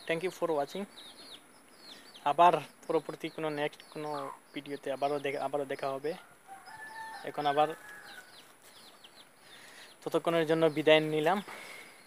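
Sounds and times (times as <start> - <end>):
small birds chirping: 0.0 - 12.0
distant rooster crowing: 6.1 - 8.5.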